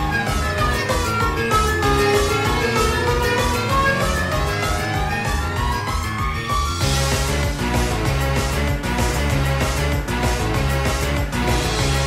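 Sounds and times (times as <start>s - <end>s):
electronic dance music: 0.0s - 12.0s.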